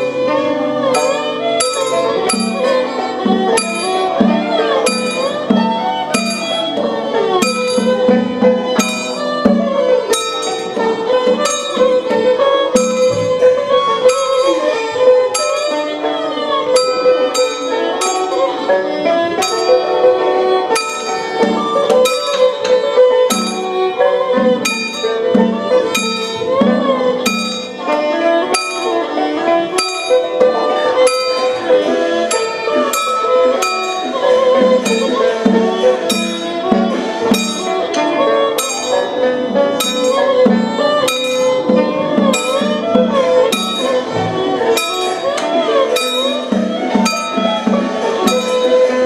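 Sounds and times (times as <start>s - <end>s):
percussion strikes: 0.0s - 49.0s.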